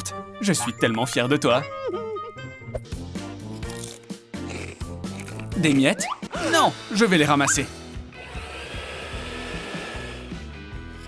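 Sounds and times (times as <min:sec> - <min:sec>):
background music: 0:00.0 - 0:11.0
vacuum cleaner running: 0:08.2 - 0:10.5.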